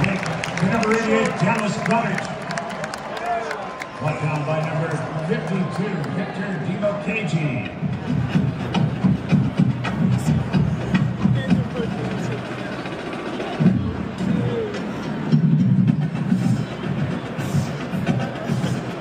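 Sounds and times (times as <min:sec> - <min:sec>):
voices: 0:03.2 - 0:19.0
percussive music over loudspeakers: 0:07.6 - 0:19.0.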